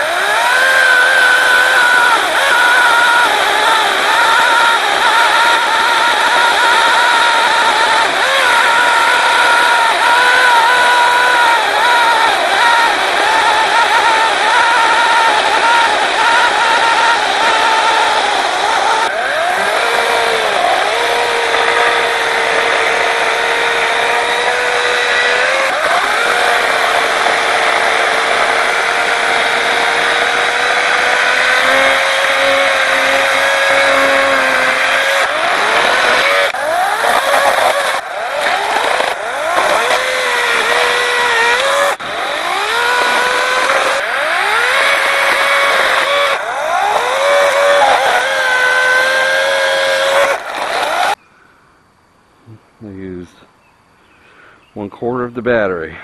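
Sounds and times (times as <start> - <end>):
battery chainsaw cutting wood: 0.0 - 51.2.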